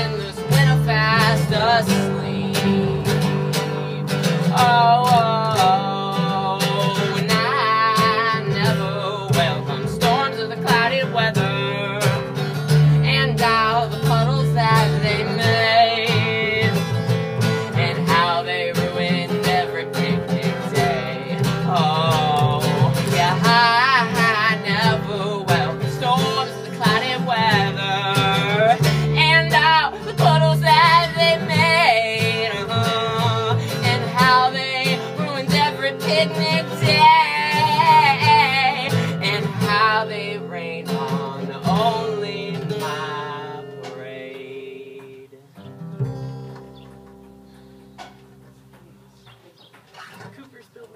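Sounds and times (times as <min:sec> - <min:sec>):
plucked double bass: 0:00.0 - 0:45.2, 0:45.8 - 0:49.1
man singing: 0:00.0 - 0:45.6
strummed acoustic guitar: 0:00.0 - 0:50.6.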